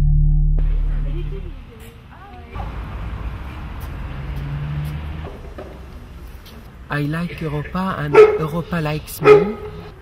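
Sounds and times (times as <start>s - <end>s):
humming note: 0.0s - 1.5s
vehicle engine rumbling: 0.0s - 10.0s
street noise: 0.6s - 10.0s.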